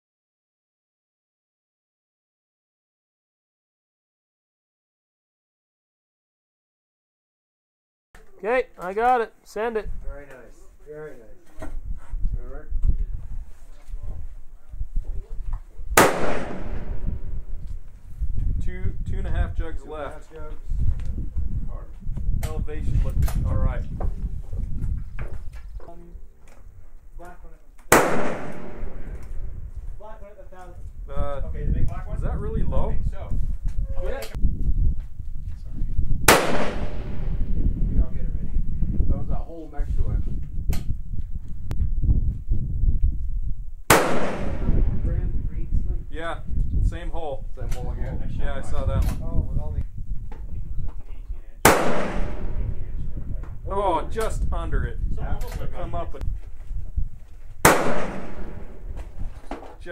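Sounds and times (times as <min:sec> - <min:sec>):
rifle shots with echo: 0:16.0 - 0:17.5, 0:27.9 - 0:29.5, 0:36.3 - 0:37.5, 0:43.9 - 0:45.1, 0:51.6 - 0:52.9, 0:57.6 - 0:59.0.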